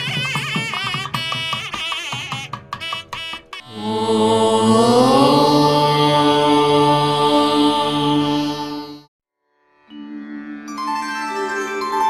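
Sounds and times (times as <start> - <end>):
person chanting om: 3.7 - 9.1.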